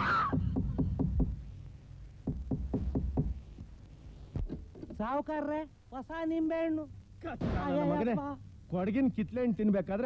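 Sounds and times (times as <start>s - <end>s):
knocking on wooden door: 0.6s - 1.4s, 2.2s - 3.5s.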